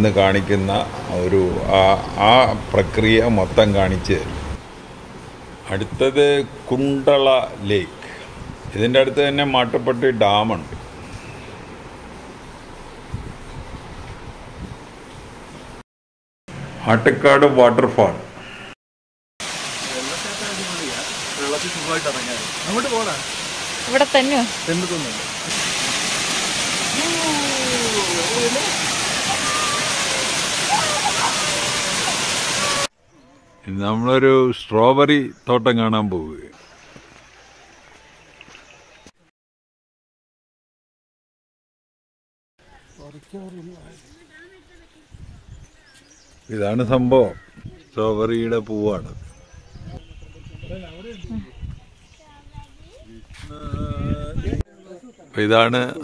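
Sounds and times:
waterfall rushing: 19.4s - 32.9s.

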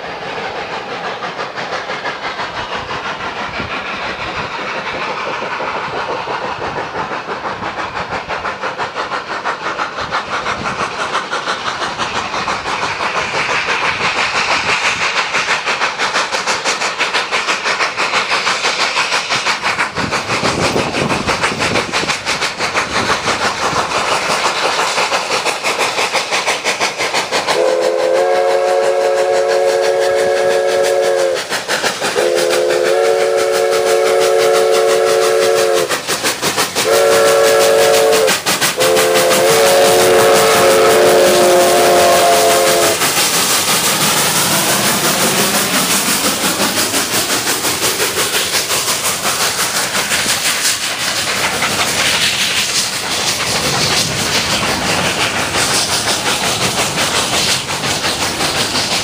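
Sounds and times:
steam locomotive exhaust: 0.0s - 59.0s
train running gear rolling: 0.0s - 59.0s
steam locomotive whistle blasts: 27.6s - 31.5s, 32.2s - 35.9s, 36.8s - 43.0s.

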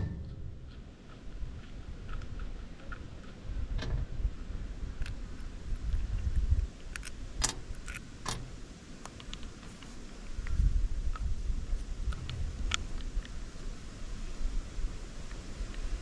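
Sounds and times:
low rumble: 0.0s - 7.9s.

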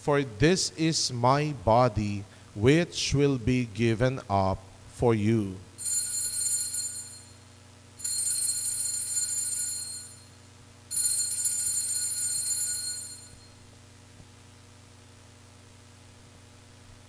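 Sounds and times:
altar bells ringing: 5.8s - 7.4s, 8.0s - 10.2s, 10.9s - 13.5s.

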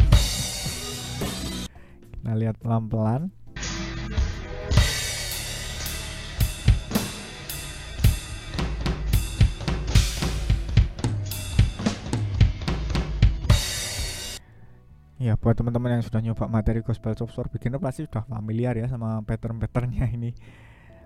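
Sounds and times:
drum kit playing fast: 0.0s - 1.7s, 3.7s - 14.4s
steady low bass: 0.0s - 1.7s, 3.6s - 14.4s
cymbal crashes: 4.7s - 14.4s.

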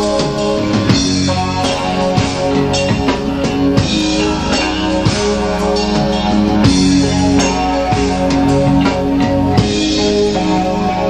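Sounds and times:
drum kit playing: 0.0s - 11.0s
electric guitars sustained chords: 0.0s - 11.0s.

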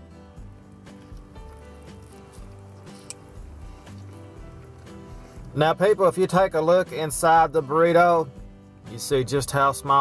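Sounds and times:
quiet background music: 0.0s - 10.0s
wet chewing: 0.5s - 5.6s.

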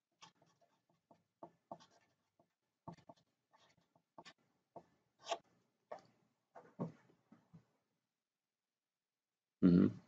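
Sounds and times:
marker pen writing on paper: 0.0s - 7.1s.

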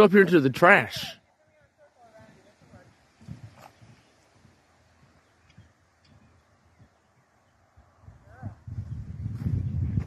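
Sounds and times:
horse hooves on soft dirt: 1.0s - 10.0s.

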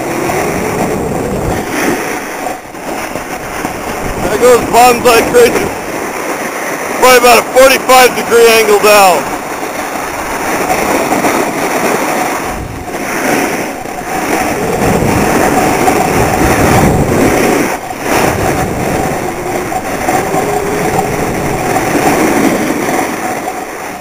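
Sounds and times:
wind rushing on microphone: 0.0s - 24.0s
edges scraping over packed snow: 8.0s - 24.0s.

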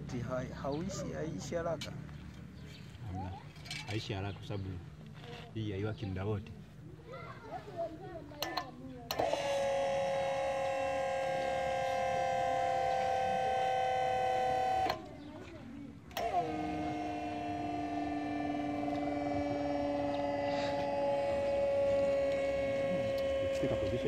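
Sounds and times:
electric motor whining hum: 9.1s - 24.0s.

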